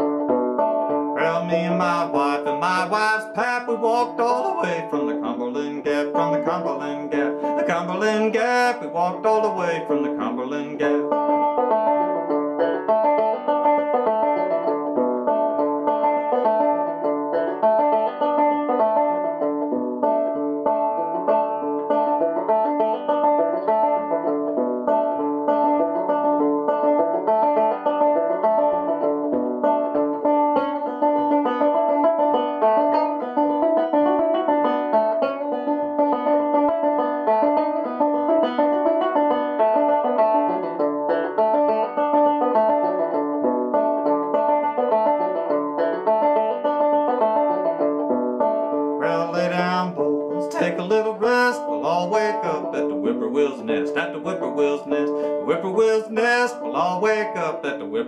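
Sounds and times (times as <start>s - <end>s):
banjo picking: 0.0s - 58.0s.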